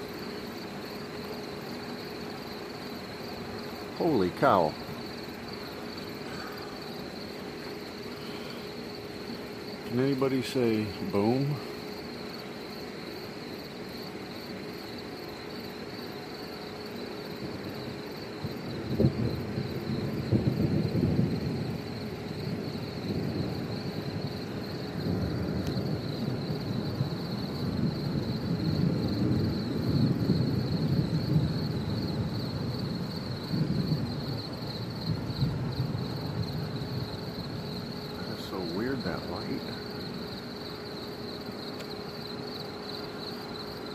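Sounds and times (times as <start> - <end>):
crickets chirping: 0.0 - 43.9
thunder clap and rumble: 17.2 - 40.6.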